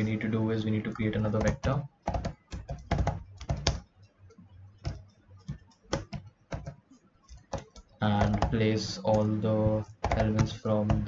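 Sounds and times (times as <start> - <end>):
computer keyboard typing: 0.7 - 11.0.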